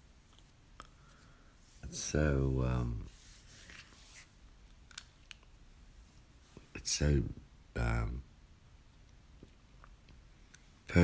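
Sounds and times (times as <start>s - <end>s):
man talking: 1.8s - 3.1s, 6.6s - 8.3s.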